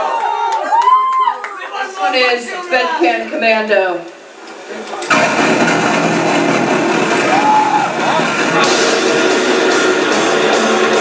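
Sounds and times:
death metal band playing live: 0:05.1 - 0:11.0
high bending guitar note: 0:05.1 - 0:11.0.

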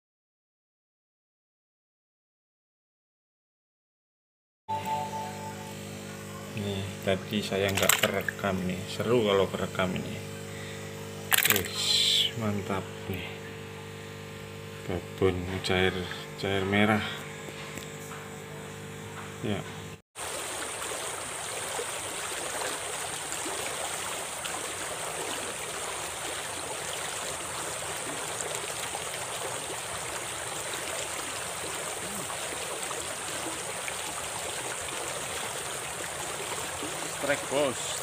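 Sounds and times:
low electrical hum: 0:04.7 - 0:38.0
fast-flowing stream: 0:20.2 - 0:38.0.

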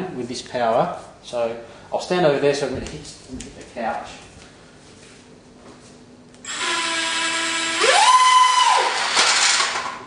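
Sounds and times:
electric ducted fans whining: 0:00.0 - 0:10.0.

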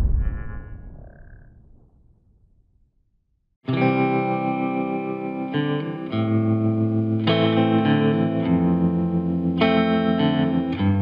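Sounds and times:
low rumbling boom: 0:00.0 - 0:03.5.

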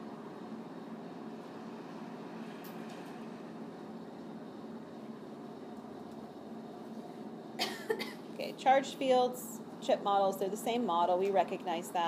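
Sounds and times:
low room noise hiss: 0:00.0 - 0:12.0
person coughing: 0:07.6 - 0:08.2.

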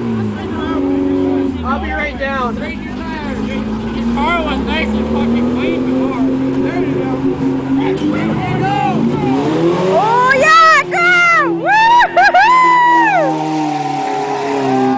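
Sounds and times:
truck engine revving: 0:00.0 - 0:14.9
onlookers whooping and yelling: 0:08.6 - 0:14.9.

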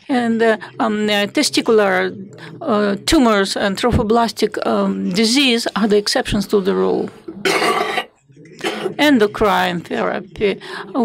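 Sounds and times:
man coughing: 0:07.4 - 0:09.0.

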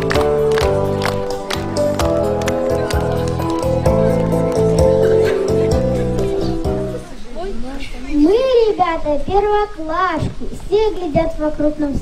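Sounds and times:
girl reciting verse through microphone: 0:08.0 - 0:12.0.

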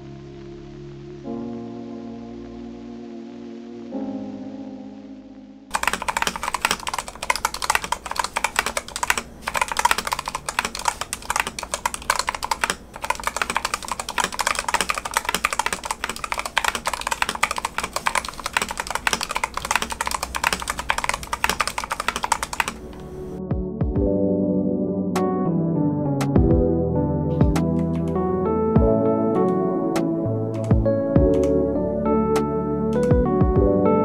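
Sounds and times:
mechanical keyboard typing: 0:05.7 - 0:23.1, 0:27.5 - 0:28.2, 0:30.5 - 0:31.6, 0:33.0 - 0:33.3.

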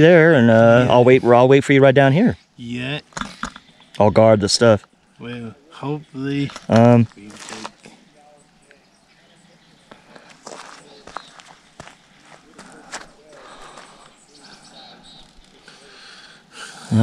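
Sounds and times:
faint distant voices: 0:02.6 - 0:17.0.

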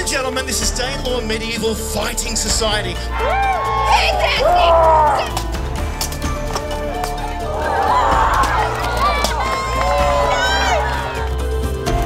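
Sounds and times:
background music with low drone: 0:00.0 - 0:12.0.

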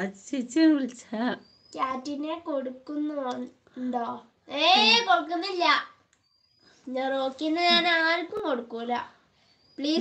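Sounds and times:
child singing: 0:04.6 - 0:05.1, 0:07.4 - 0:08.4.

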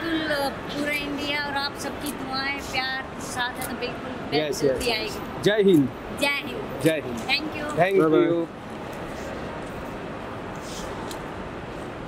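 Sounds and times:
people talking indistinctly: 0:00.0 - 0:08.6.

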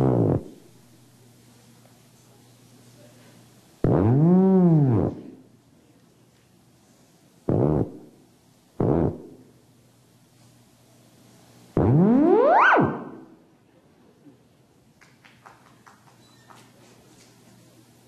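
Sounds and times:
theremin notes gliding: 0:11.8 - 0:13.3.

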